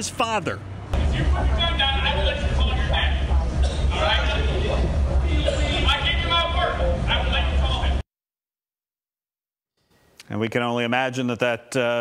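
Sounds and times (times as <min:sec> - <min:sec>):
steady low rumble: 0:00.8 - 0:08.0.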